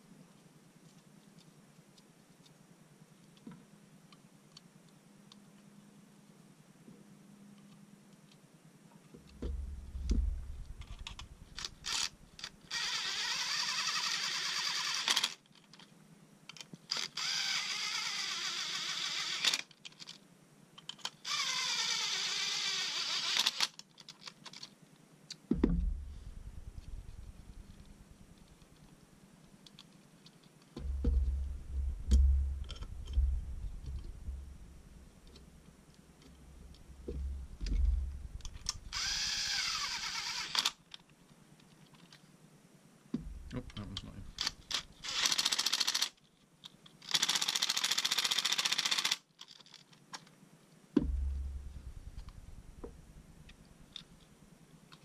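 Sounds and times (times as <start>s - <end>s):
knocks and thumps on wooden bench: 9.4s - 11.8s, 25.5s - 28.4s, 30.8s - 35.4s, 36.4s - 38.9s, 43.2s - 44.4s, 51.0s - 53.5s
cordless driver whining: 37.1s - 40.6s.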